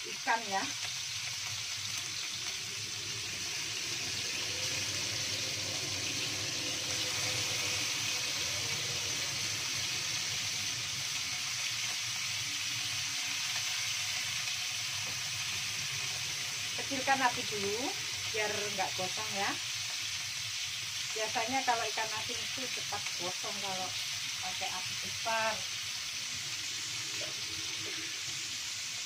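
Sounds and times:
fish frying in hot oil: 0.0 - 29.0.

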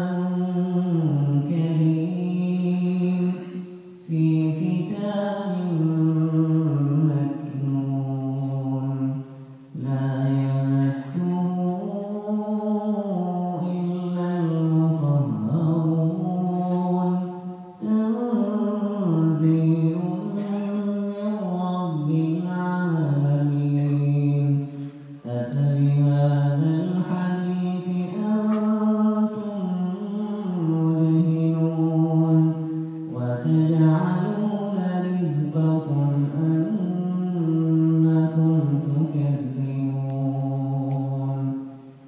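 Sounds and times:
man chanting melodically: 0.0 - 42.0.

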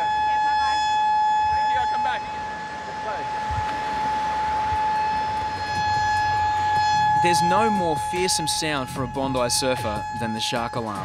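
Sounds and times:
alarm steady tone: 0.0 - 11.0.

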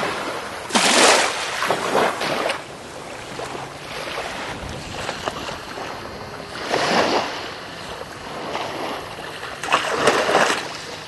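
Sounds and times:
surf washing on beach: 0.0 - 11.0
wind on microphone: 0.0 - 11.0.

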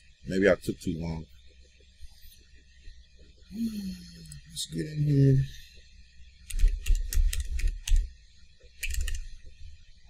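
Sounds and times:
computer keyboard key clicks: 6.5 - 8.1, 8.8 - 9.3.

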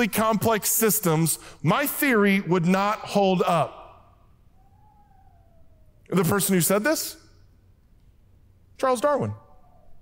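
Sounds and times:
faint high tone sliding down: 4.5 - 6.5.

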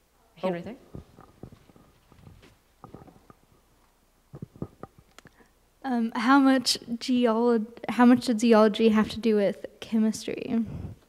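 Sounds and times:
faint knocks and thumps: 0.8 - 3.7, 4.3 - 5.1.

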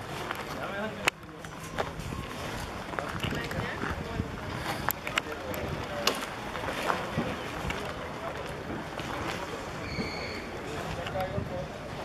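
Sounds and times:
wind on microphone: 1.9 - 6.0, 10.8 - 12.0.

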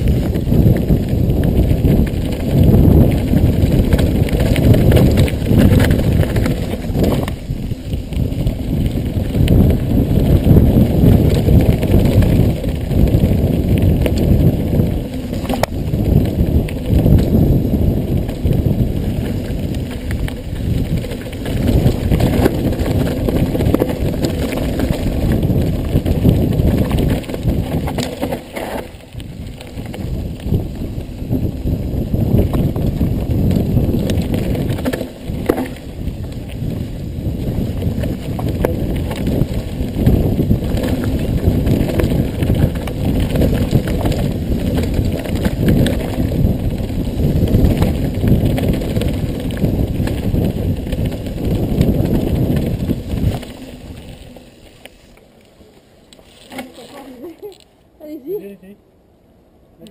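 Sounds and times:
bike rattling and knocking: 0.0 - 54.8
bike tyre rumble on gravel: 0.0 - 57.7.

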